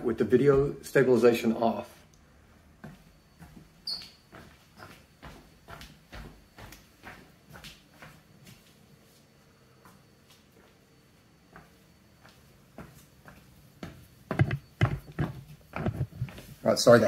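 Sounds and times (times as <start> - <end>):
faint footsteps indoors: 0.0 - 17.0
brief high squeak: 3.9 - 4.2.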